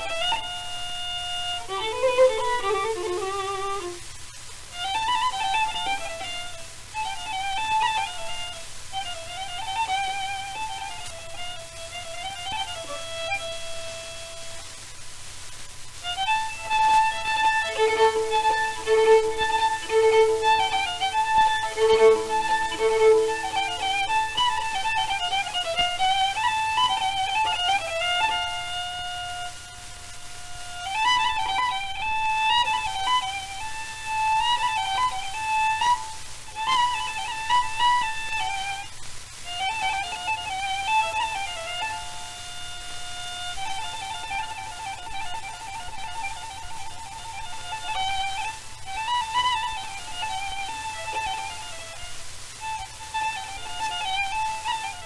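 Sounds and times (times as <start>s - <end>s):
solo violin melody: 0.0s - 14.9s, 15.8s - 55.0s
record surface hiss: 0.0s - 55.0s.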